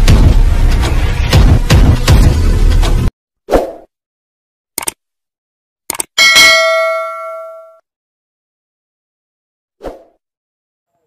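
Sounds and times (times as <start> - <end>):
notification bell ding: 6.2 - 7.8.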